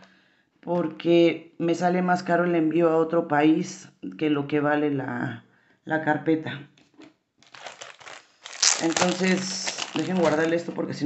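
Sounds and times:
plastic wrapping crinkling: 7.4 - 11.0.

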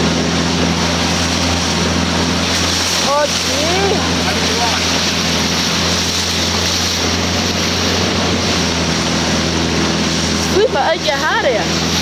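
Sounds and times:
boat motor humming: 0.0 - 12.0
water noise: 0.0 - 12.0
wind: 0.0 - 12.0.

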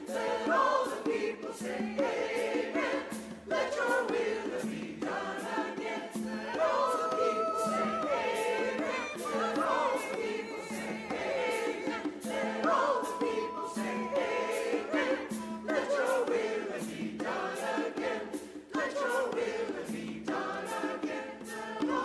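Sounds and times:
mixed choir singing an anthem: 0.0 - 22.0.

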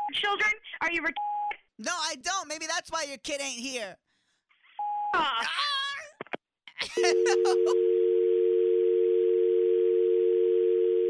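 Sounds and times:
telephone dial tone: 7.4 - 11.0.

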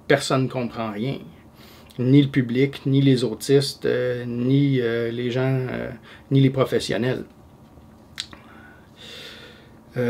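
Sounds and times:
man's mouth click: 8.1 - 8.5
soft in-breath: 8.4 - 9.8.

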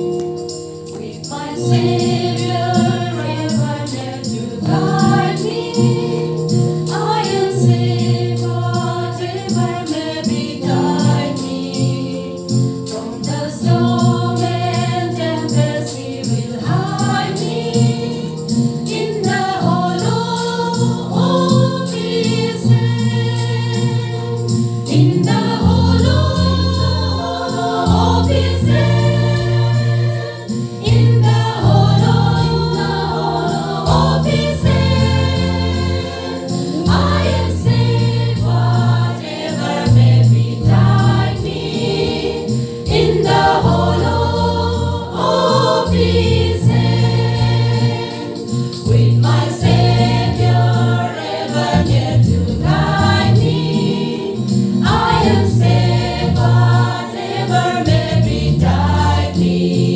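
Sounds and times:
women's choir singing: 0.8 - 59.9.

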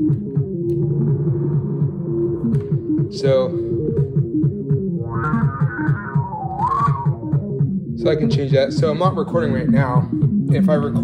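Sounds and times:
electronic drum hits: 0.0 - 11.0.

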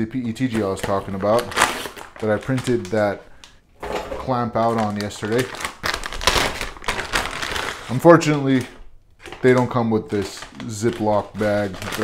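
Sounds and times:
plastic bag crinkling: 0.4 - 12.0.

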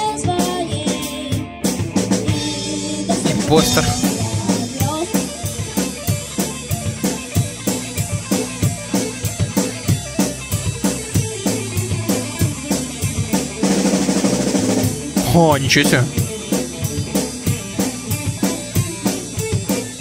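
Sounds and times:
rock band playing heavy metal: 0.0 - 20.0
drum kit fast beat: 3.1 - 6.5, 7.1 - 20.0.

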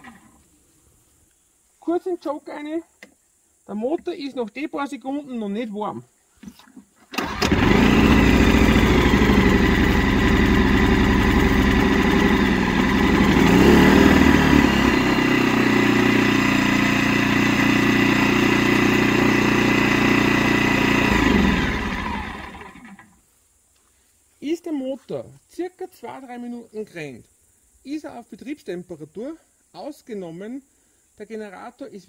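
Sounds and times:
generator pull start: 7.0 - 23.1
generator engine running: 7.2 - 23.1.

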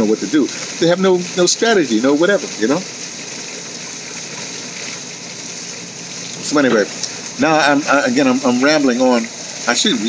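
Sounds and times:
garden waterfall splashing: 0.0 - 10.0.

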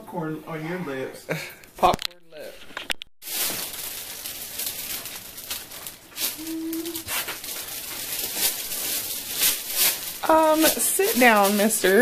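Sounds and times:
paper rustling and crinkling: 2.4 - 12.0.

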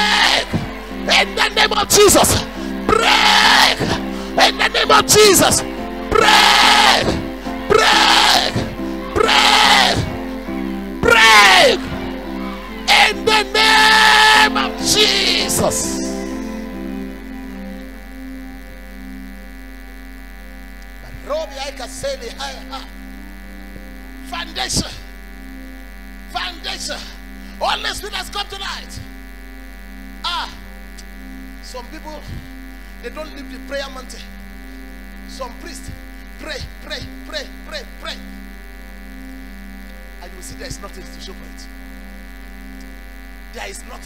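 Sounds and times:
person calling out: 0.0 - 10.2, 11.0 - 11.9, 12.5 - 16.4
electrical mains hum: 0.0 - 44.0.

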